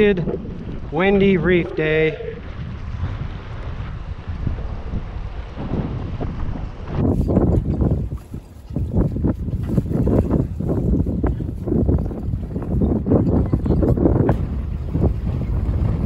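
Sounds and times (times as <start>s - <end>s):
strong wind buffeting microphone: 0.0s - 16.0s.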